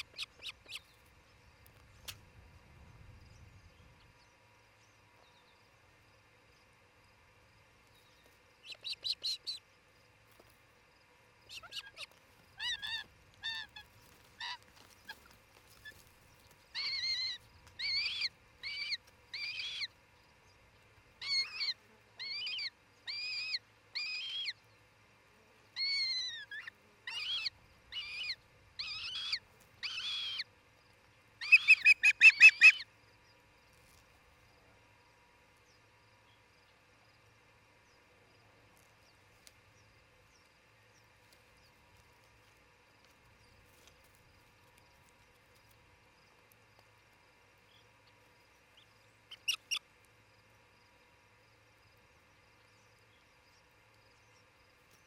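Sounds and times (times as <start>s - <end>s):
osprey calling: 11.5s - 19.9s, 25.8s - 30.5s, 31.4s - 32.9s, 49.3s - 49.8s.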